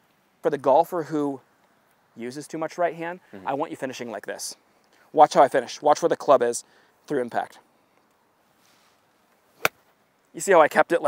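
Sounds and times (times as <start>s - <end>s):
golf club striking ball: 9.6s - 9.8s.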